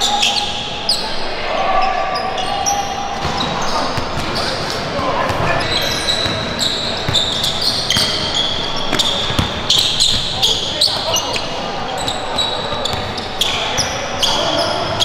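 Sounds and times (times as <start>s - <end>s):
sneaker squeaks: 0.0s - 15.0s
basketball dribbling on hardwood: 8.9s - 10.2s.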